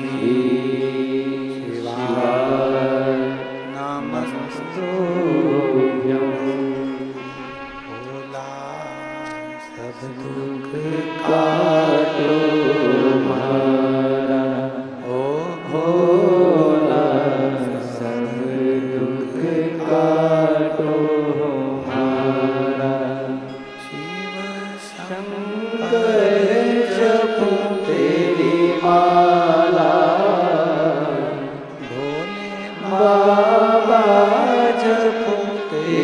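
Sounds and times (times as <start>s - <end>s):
man chanting amplified: 0.0s - 36.0s
musical backing: 0.0s - 36.0s.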